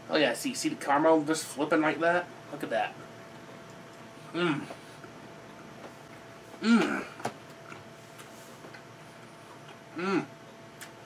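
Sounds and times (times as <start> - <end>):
low room hum: 0.0 - 11.0
soft chewing clicks: 3.3 - 4.1.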